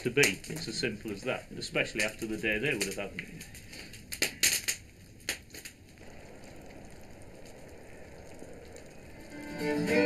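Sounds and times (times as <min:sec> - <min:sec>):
faint low background noise: 0:00.0 - 0:10.0
wood fire crackling: 0:00.0 - 0:10.0.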